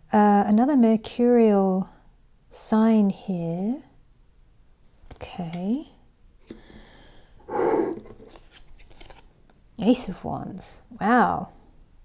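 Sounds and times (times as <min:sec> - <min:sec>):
cards rustling and sliding: 0:07.6 - 0:09.4.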